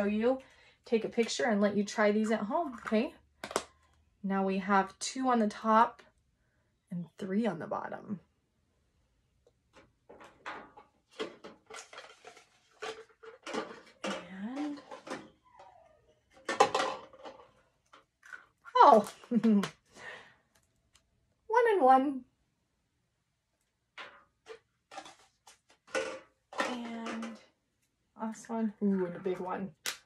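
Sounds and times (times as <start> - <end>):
plastic eggs and cups clattering: 2.6 - 4.0, 9.7 - 15.7, 16.3 - 19.9, 23.9 - 27.6.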